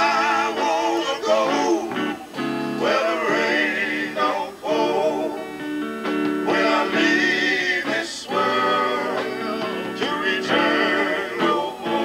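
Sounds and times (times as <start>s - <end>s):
men singing in harmony: 0.0s - 5.7s, 6.4s - 12.0s.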